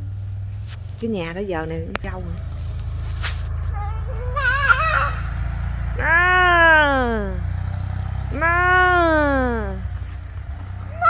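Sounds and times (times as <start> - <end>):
atv engine running: 0.0 - 11.0.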